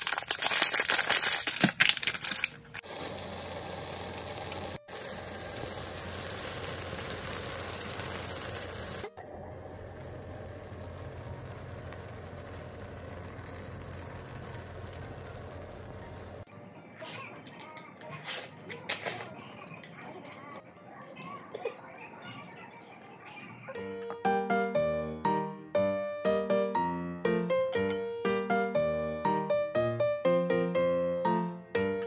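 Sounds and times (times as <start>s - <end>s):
food crackling in pan: 0.0s - 16.5s
low hum: 3.0s - 16.5s.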